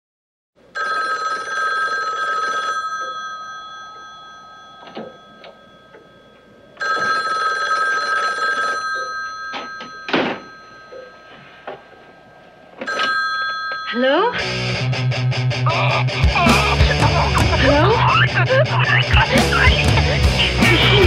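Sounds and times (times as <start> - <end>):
telephone bell ringing: 0.7 - 14.5.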